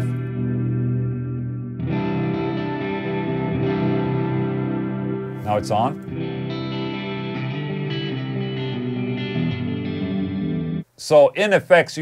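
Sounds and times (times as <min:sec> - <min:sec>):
electric guitar chords ringing: 0:00.0 - 0:10.9.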